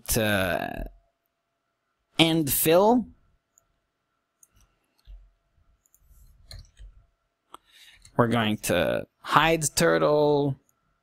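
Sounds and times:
mouse and keyboard clicks: 0:05.8 - 0:07.0.

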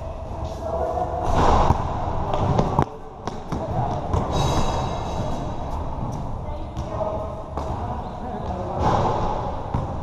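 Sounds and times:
basketball bouncing on hard court: 0:07.6 - 0:10.0.

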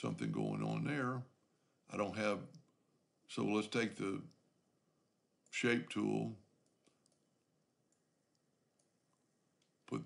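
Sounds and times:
person speaking: 0:00.0 - 0:04.4, 0:05.5 - 0:06.7, 0:09.7 - 0:10.0
computer mouse clicks: 0:06.6 - 0:07.3.

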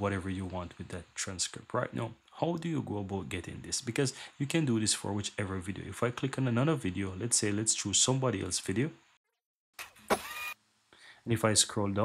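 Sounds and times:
man speaking: 0:00.0 - 0:09.0, 0:11.3 - 0:12.0.

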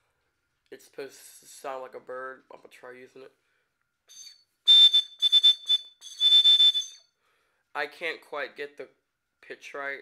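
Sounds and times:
shrill bird whistle toots: 0:04.1 - 0:07.1.

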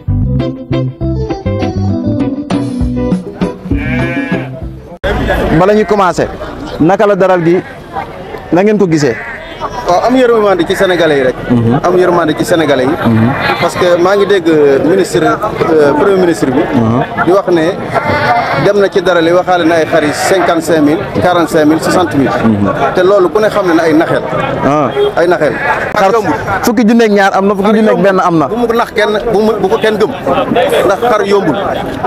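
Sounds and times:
background music: 0:00.0 - 0:05.0
sheep bleating: 0:03.7 - 0:04.8, 0:09.0 - 0:09.7, 0:13.0 - 0:14.1, 0:17.8 - 0:18.9, 0:19.7 - 0:20.6, 0:25.3 - 0:26.2
men talking loudly: 0:05.0 - 0:32.0.

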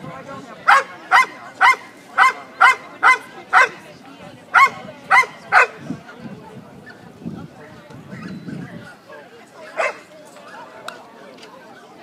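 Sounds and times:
people chattering: 0:00.0 - 0:12.0
dog barking: 0:00.7 - 0:03.8, 0:04.6 - 0:05.8, 0:09.8 - 0:10.0.

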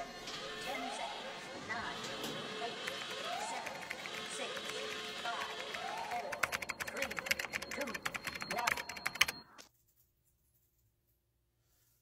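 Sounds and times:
rapid keyboard typing: 0:02.8 - 0:09.6.

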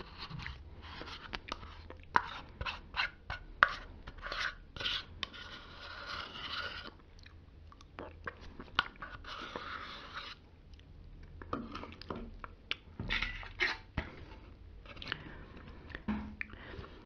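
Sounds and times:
plastic spoon scraping yogurt tub: 0:00.0 - 0:07.0, 0:08.3 - 0:10.5, 0:11.5 - 0:12.3, 0:13.0 - 0:15.7.

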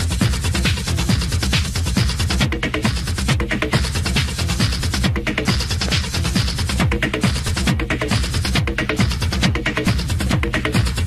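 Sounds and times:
hi-hats and percussion: 0:00.0 - 0:11.0
techno kick drum: 0:00.0 - 0:11.0.

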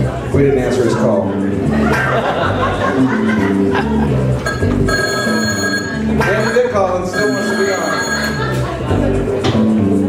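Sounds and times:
telephone ringing: 0:04.4 - 0:08.6.

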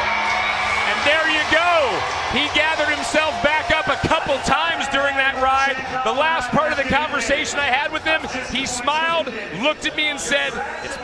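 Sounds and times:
men talking: 0:00.8 - 0:11.0.

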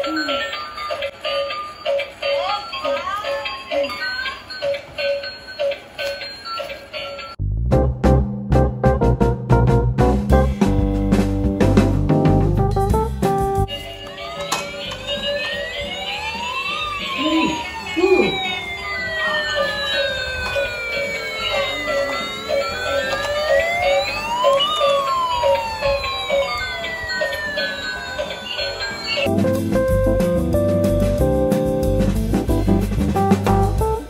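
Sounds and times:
sliding electronic tones: 0:13.7 - 0:29.3
toy electronic beeps: 0:13.7 - 0:29.3.

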